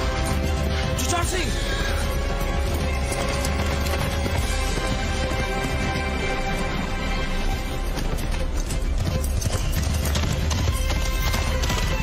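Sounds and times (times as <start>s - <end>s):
background film music: 0.0s - 12.0s
horse galloping: 1.8s - 12.0s.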